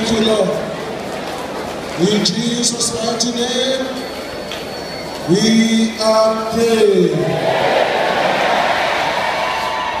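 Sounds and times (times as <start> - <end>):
crowd of voices: 0.0 - 10.0.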